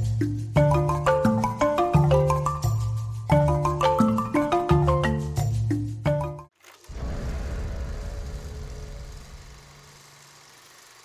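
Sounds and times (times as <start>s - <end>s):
low rumbling swell: 6.9s - 10.2s.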